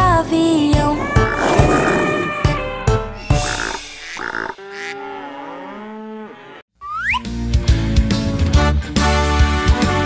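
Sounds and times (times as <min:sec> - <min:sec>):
cartoon cow mooing: 0:01.0 - 0:02.8, 0:03.4 - 0:06.6.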